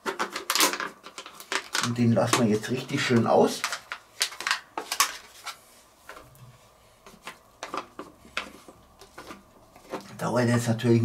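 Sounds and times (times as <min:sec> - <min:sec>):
wooden spatula scraping a pot: 0:06.5 - 0:10.7.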